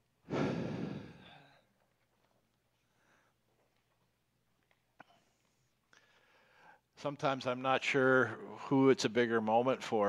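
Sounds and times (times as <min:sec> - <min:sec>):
man sighing: 0:00.3 - 0:01.6.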